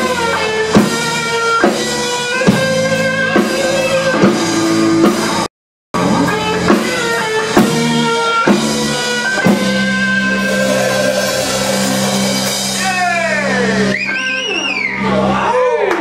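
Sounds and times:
electric guitars: 0.0 - 15.4
drum hits: 7.6 - 13.4.

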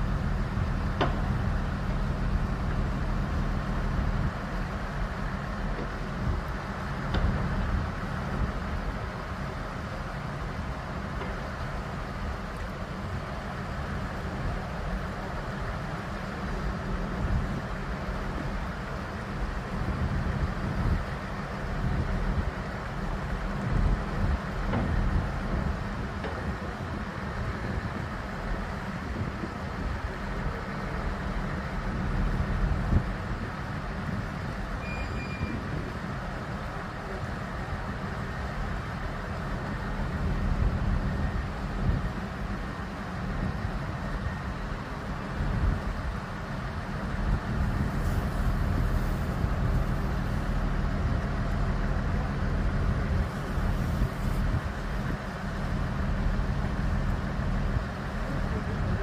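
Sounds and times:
crane diesel engine rumbling: 0.0 - 59.0
short beep: 34.8 - 35.6.

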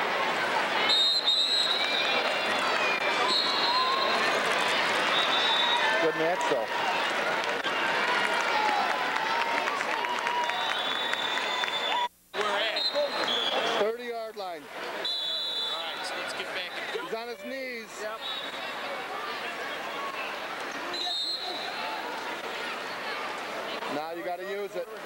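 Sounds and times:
crowd chatter: 0.0 - 25.0.

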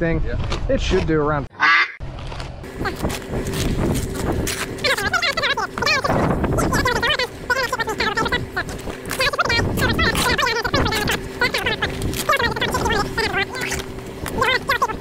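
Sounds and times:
people talking: 0.0 - 1.5, 2.8 - 3.2, 4.8 - 15.0
faint steady hum: 2.6 - 15.0.

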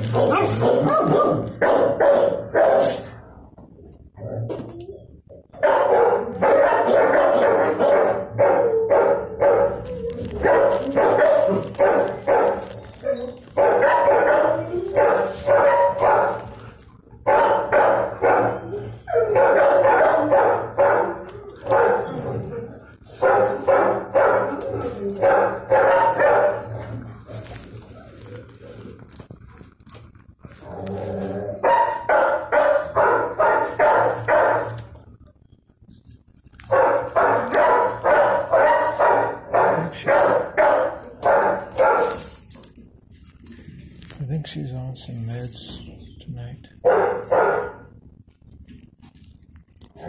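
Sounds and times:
dogs barking: 0.0 - 3.2, 5.4 - 27.1, 31.5 - 35.0, 36.7 - 42.8, 46.8 - 48.0.

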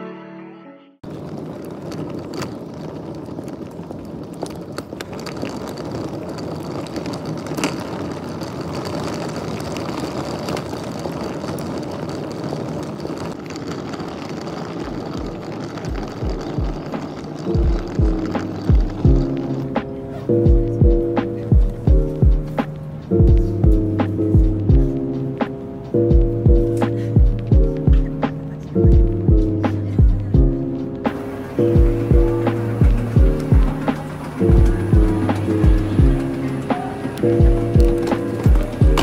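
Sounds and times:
steady rush of street noise: 1.0 - 39.0
background music with a beat: 17.8 - 39.0.

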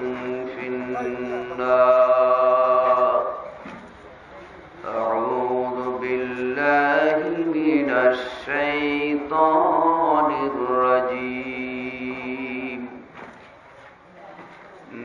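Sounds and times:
man chanting melodic phrases: 0.0 - 3.5.

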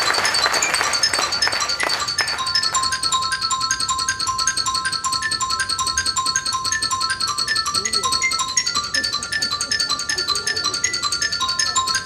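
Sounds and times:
xylophone notes: 0.0 - 12.0.

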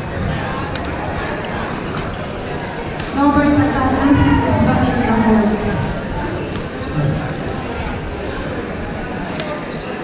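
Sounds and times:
sports hall hubbub: 0.0 - 10.0.

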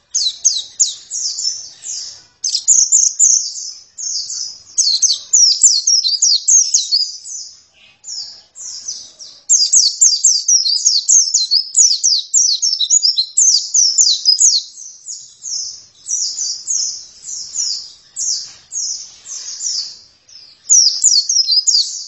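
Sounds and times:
bird warbling song: 0.0 - 22.0.

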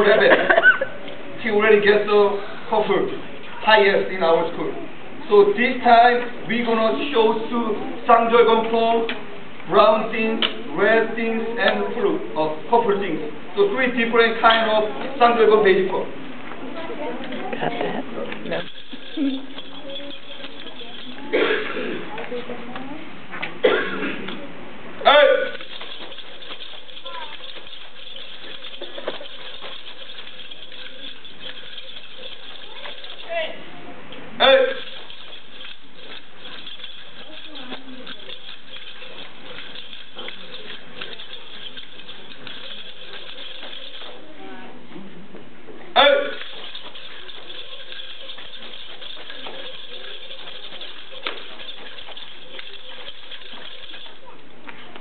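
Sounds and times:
nunchaku chain clicking: 18.4 - 21.4, 25.2 - 33.5, 34.4 - 44.2, 46.0 - 54.4
nunchaku clack: 18.5 - 21.4, 25.2 - 33.4, 34.4 - 44.2, 46.0 - 54.3.

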